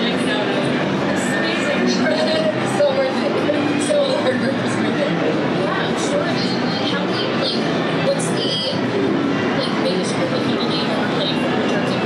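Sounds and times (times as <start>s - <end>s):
woman talking: 0.0s - 8.9s, 9.6s - 12.0s
crowd din in a hall: 0.0s - 12.0s.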